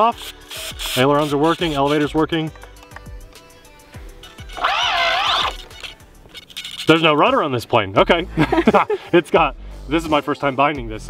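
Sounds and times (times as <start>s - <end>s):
faint background music: 0.0s - 11.0s
servos whining: 3.4s - 7.1s.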